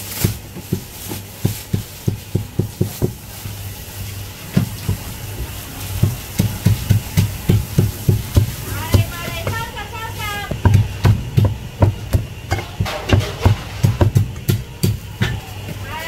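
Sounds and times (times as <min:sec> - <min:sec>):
cleaver chopping on wooden block: 0:10.5 - 0:15.4.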